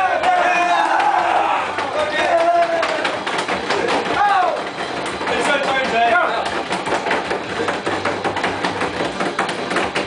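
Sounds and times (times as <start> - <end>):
knocks and clatter on table: 1.8 - 10.0.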